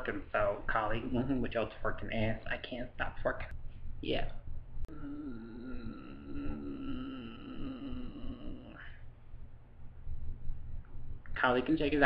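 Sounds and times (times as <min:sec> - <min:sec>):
person humming: 0:04.9 - 0:09.0.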